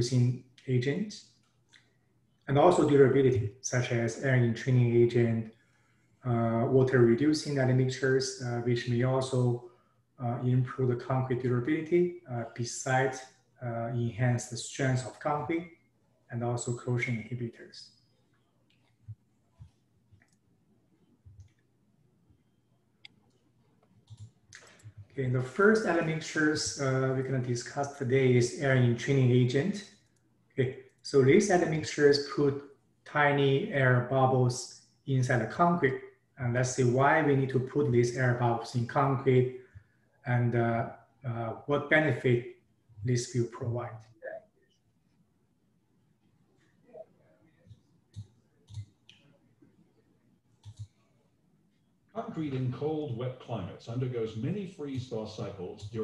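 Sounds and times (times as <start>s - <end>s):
computer mouse clicks: 23.0s - 25.0s, 47.6s - 49.3s, 50.6s - 51.0s.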